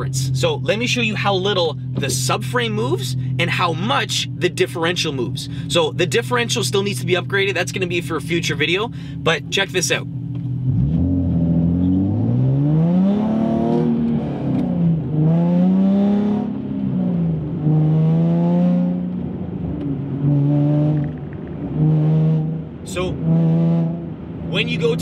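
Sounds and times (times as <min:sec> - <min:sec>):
car engine revving: 0:00.0 - 0:25.0.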